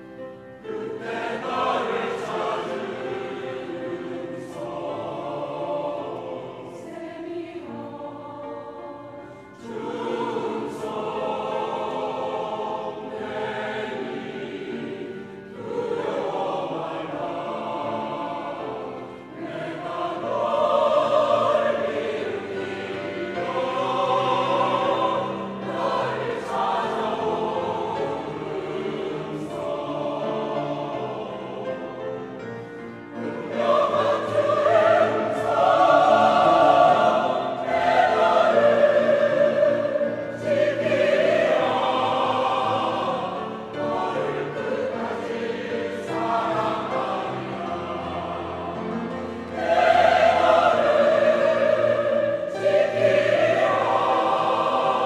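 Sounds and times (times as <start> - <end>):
mixed choir singing: 0.0 - 55.0.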